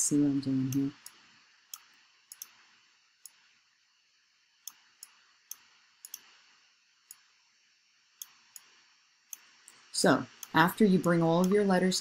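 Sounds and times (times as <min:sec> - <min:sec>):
faint steady hiss: 0:00.0 - 0:12.0
computer mouse buttons clicking: 0:00.7 - 0:02.6, 0:04.6 - 0:06.4, 0:09.3 - 0:11.7.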